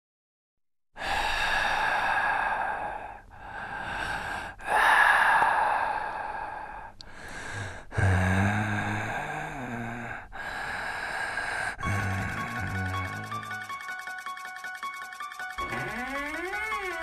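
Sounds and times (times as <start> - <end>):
heavy breathing: 1.0 - 13.6.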